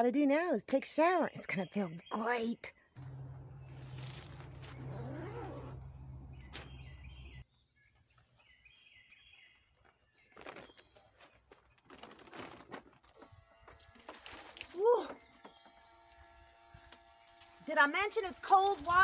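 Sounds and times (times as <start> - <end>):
bird chirps: 1.6 - 11.3
rustling and knocks of tent: 3.0 - 7.4, 10.3 - 13.3
steady low hum: 3.0 - 7.4.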